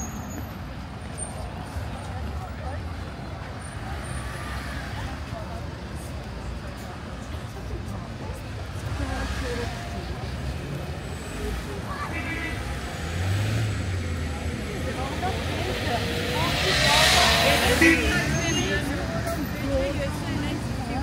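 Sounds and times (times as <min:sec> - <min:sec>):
passersby talking: 0:00.0 - 0:21.0
rush of traffic noise: 0:00.0 - 0:21.0
vehicle engines running: 0:00.0 - 0:21.0.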